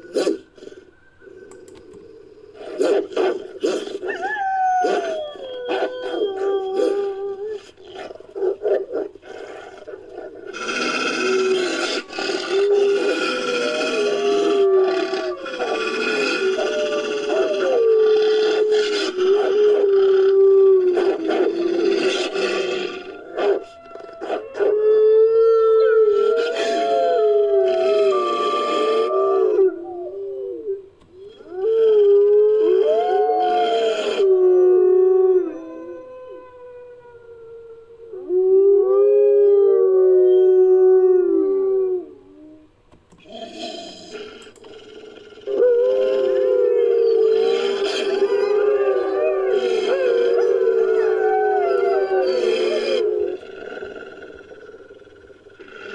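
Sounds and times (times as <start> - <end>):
canine howls and whines: 0.0 - 43.4, 44.1 - 55.9.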